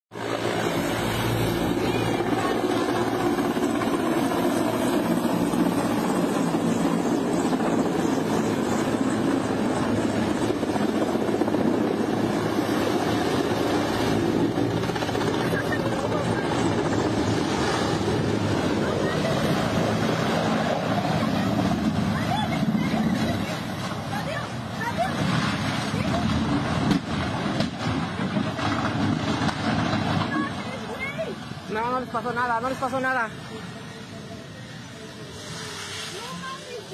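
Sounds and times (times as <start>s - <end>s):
helicopter rotor and turbines: 0.1s - 36.9s.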